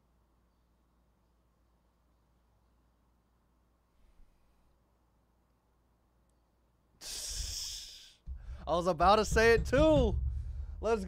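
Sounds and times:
man's sharp loud breath: 0:07.0 - 0:08.7.

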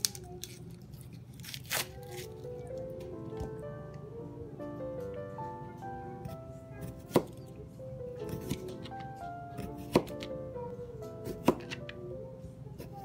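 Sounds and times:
background music: 0:01.6 - 0:13.0.

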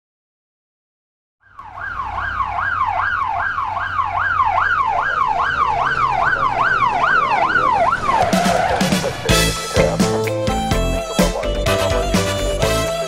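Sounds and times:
police siren on fast yelp: 0:01.4 - 0:13.0.

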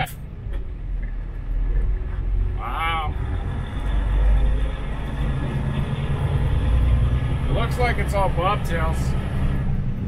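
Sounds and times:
diesel engine running: 0:00.0 - 0:10.0
road noise: 0:00.0 - 0:10.0.

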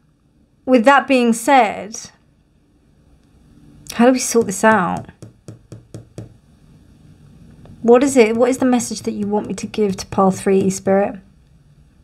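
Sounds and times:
fingers tapping on card: 0:04.3 - 0:06.4, 0:07.7 - 0:11.0.

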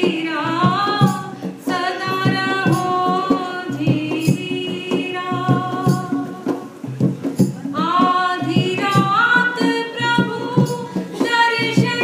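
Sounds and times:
woman singing into a microphone: 0:00.0 - 0:06.9, 0:07.7 - 0:12.0
steady drum beat: 0:00.0 - 0:12.0.

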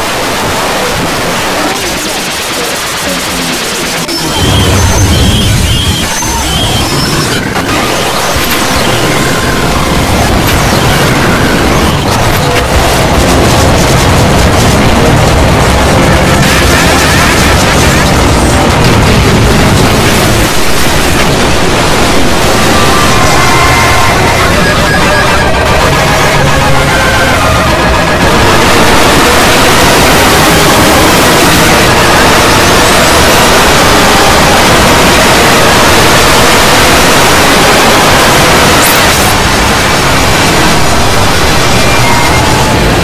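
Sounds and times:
overlapping music and distorted noise: 0:00.0 - 0:43.0.

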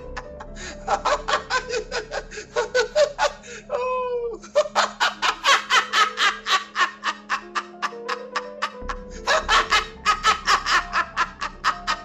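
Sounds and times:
old man laughing hard: 0:00.0 - 0:12.0.

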